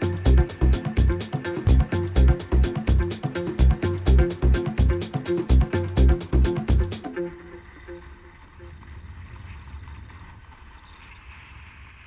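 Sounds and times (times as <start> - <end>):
background music: 0.0 - 8.7.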